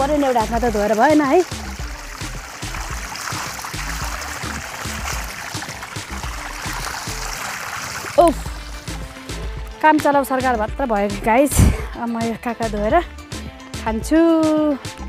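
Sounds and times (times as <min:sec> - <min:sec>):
cucumber rinsed in water jet: 0:00.0 - 0:09.2
water gushing and splashing: 0:00.0 - 0:09.8.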